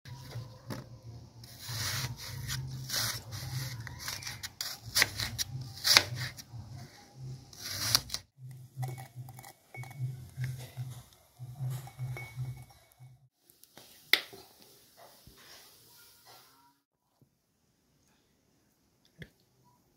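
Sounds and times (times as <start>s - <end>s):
knife slicing apple: 1.4s - 6.6s, 7.5s - 9.9s.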